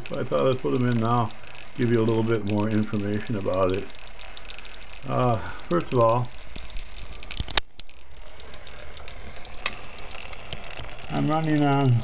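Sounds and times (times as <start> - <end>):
motor ticking and whirring: 0.0 - 12.0.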